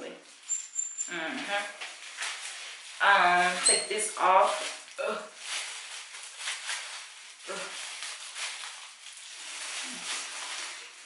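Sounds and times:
plastic gloves crinkling: 0:00.0 - 0:11.0.

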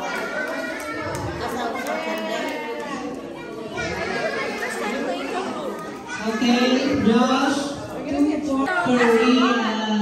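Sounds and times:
children chattering in a hall: 0:00.0 - 0:10.0.

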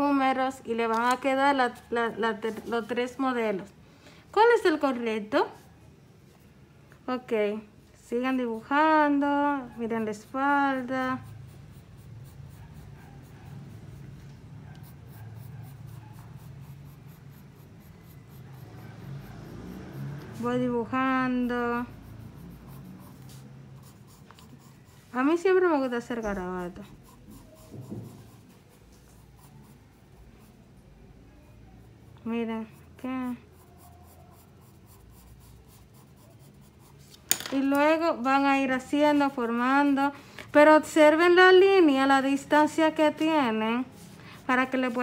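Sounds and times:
pencil scratching on paper: 0:07.4 - 0:45.0.

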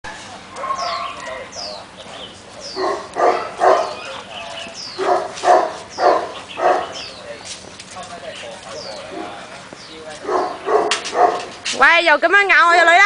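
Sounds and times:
dog barking: 0:00.5 - 0:01.8, 0:02.8 - 0:04.2, 0:05.0 - 0:07.0, 0:10.2 - 0:11.6.

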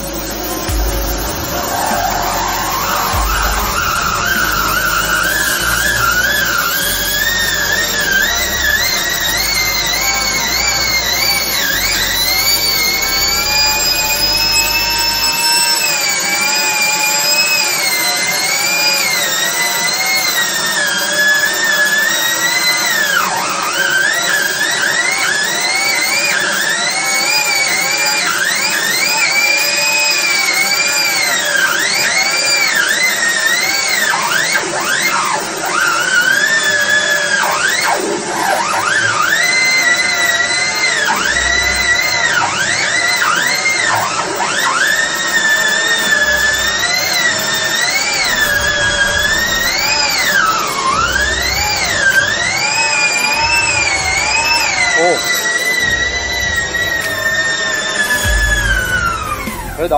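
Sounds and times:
nozzle whine wavering in pitch: 0:00.0 - 0:59.9
low rumble: 0:58.2 - 0:59.9.

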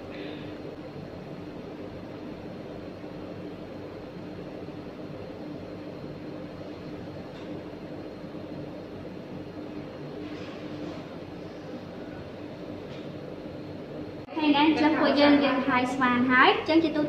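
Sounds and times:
ventilation hum: 0:00.0 - 0:17.0.

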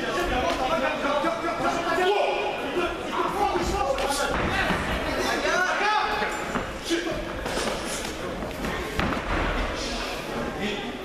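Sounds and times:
voices in a hall: 0:00.0 - 0:11.0.

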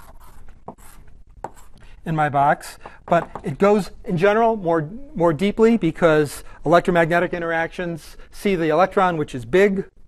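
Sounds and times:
writing taps and scrapes on board: 0:00.2 - 0:01.7, 0:02.8 - 0:03.5.

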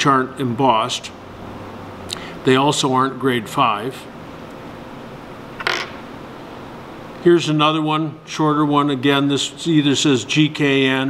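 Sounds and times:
room hiss: 0:00.0 - 0:11.0
bolt scraping on workbench: 0:05.6 - 0:06.0.

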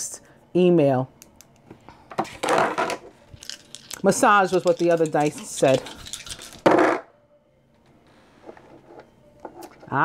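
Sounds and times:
metal dice clicking: 0:03.4 - 0:06.7
dice rattling on tabletop: 0:03.4 - 0:07.0.

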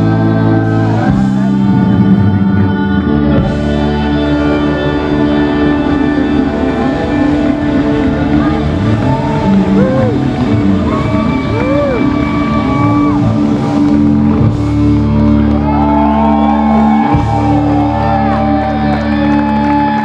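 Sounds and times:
crowd whooping and shouting: 0:00.0 - 0:20.0
live band playing loud: 0:00.0 - 0:20.0.

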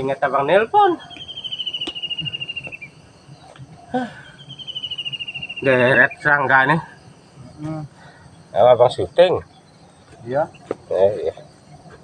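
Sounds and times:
insect high-pitched trill: 0:00.0 - 0:12.0.

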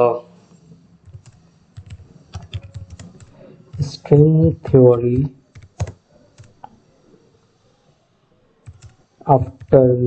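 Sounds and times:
computer keyboard typing: 0:01.0 - 0:04.0, 0:05.5 - 0:06.7, 0:08.6 - 0:09.8.

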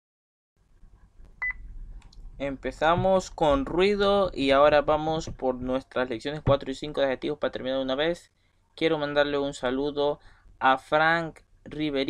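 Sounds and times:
low background hum and rumble: 0:01.0 - 0:08.2.

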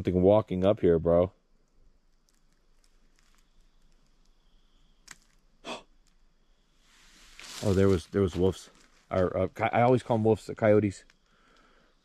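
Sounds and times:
rustling scuff: 0:06.9 - 0:09.3
faint ticks: 0:11.0 - 0:12.0.

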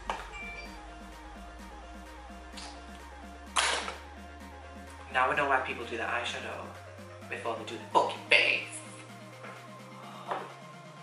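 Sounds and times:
electronic music with repeating low note: 0:00.0 - 0:11.0.

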